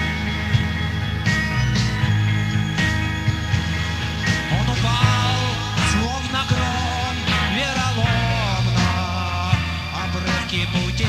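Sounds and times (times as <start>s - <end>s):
rock band playing live: 0.0s - 11.0s.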